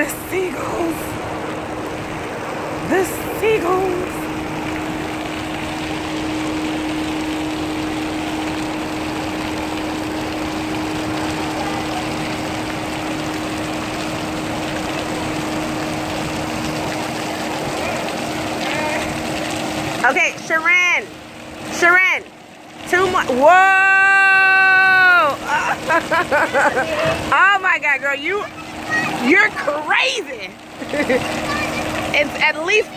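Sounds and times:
machinery hum: 0:00.0 - 0:32.9.

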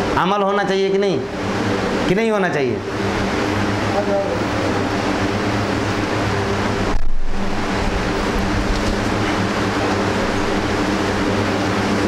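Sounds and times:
loud background noise: 0:00.0 - 0:12.0
low hum: 0:02.8 - 0:12.0.

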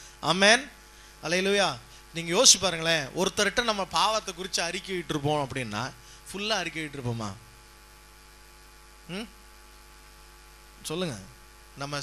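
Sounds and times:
low electrical mains hum: 0:00.0 - 0:12.0
man speaking: 0:00.2 - 0:07.4, 0:10.8 - 0:12.0.

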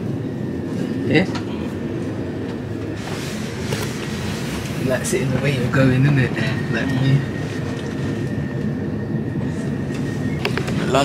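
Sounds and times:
train air conditioning hum: 0:00.0 - 0:11.0.

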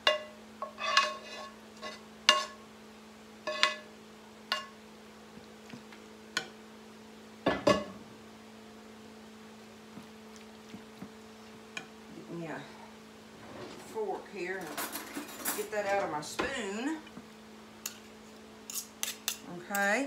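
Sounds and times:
steady low hum: 0:00.0 - 0:20.0
metal spoon scraping a skillet: 0:00.1 - 0:02.6, 0:03.4 - 0:03.9, 0:17.8 - 0:20.0.

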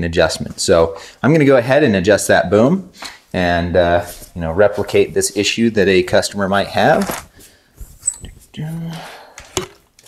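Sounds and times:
person humming: 0:08.6 - 0:09.2.

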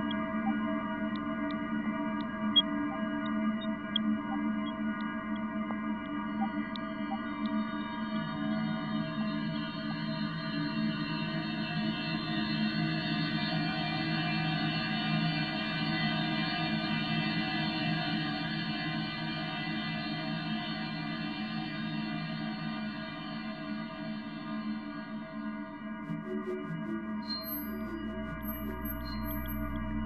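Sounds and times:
dense drone of sustained tones: 0:26.1 - 0:30.0.

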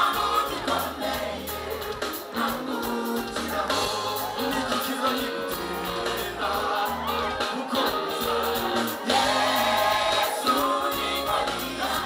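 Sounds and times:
gospel band playing: 0:00.0 - 0:12.0
many voices singing: 0:00.0 - 0:12.0.

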